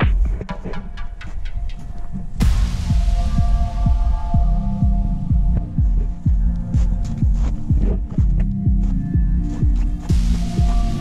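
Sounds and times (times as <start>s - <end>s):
bass drum beating: 0.0s - 1.0s, 2.4s - 11.0s
cymbal crash: 2.4s - 5.1s
sustained synth chords: 2.4s - 11.0s.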